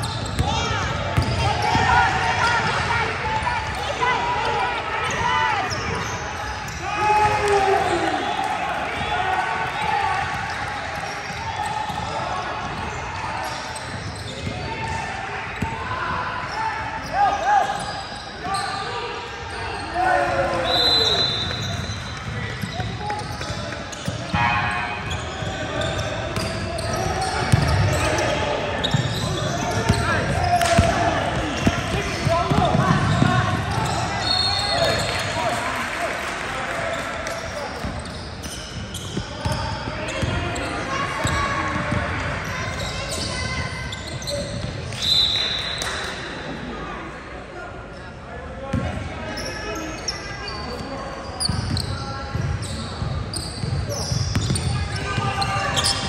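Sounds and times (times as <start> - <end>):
sneaker squeak: 0.0 - 2.6, 3.6 - 7.0, 10.3 - 15.0, 16.4 - 35.3, 36.9 - 46.4, 47.9 - 56.0.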